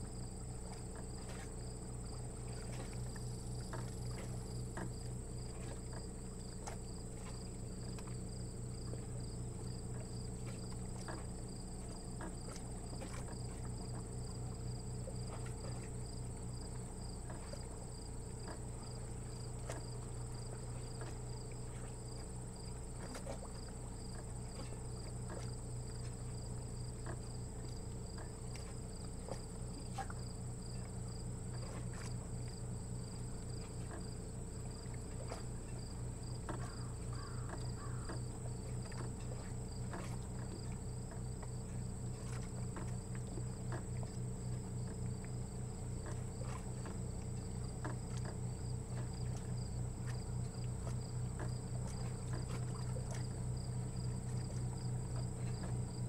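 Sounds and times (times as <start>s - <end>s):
insects chirping: 0.0s - 56.0s
low steady hum: 0.0s - 56.0s
faint ticks: 23.0s - 53.4s.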